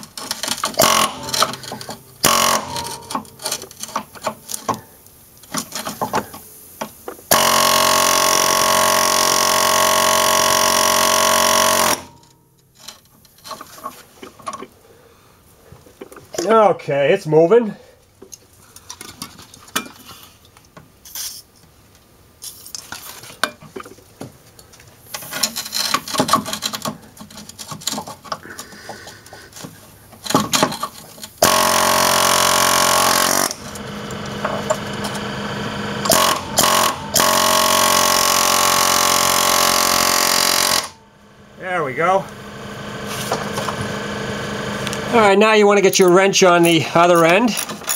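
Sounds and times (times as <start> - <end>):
air chisel hammering: 0.8 - 3.3, 36.0 - 41.0.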